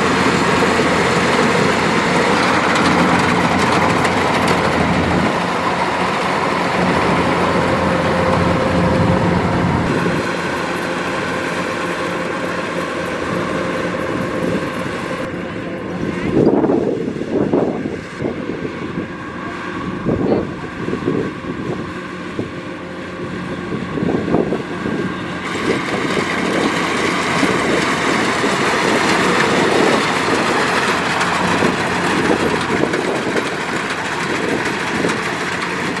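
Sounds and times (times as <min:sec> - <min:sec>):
combine harvester diesel engine drone: 0:00.0 - 0:36.0.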